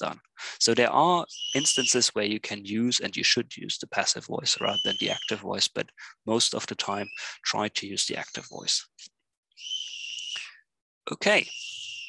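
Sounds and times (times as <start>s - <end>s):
high steady whistle-like tone: 1.3s - 2.0s.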